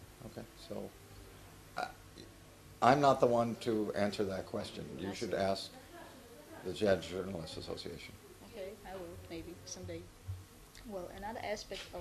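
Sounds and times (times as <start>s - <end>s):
man speaking: 2.8s - 5.7s, 6.6s - 8.2s.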